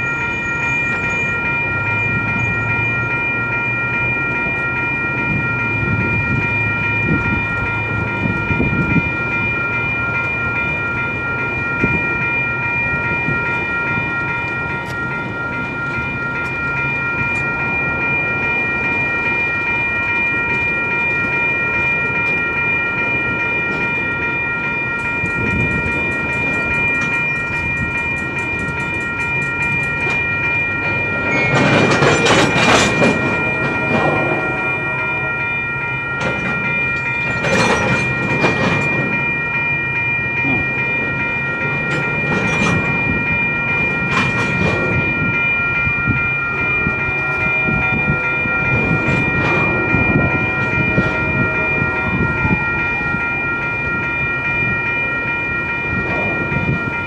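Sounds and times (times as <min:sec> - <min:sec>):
railroad crossing bell ringing: 0:00.0 - 0:57.0
train rumble: 0:00.0 - 0:57.0
wheels clicking over rail joints: 0:18.8 - 0:57.0.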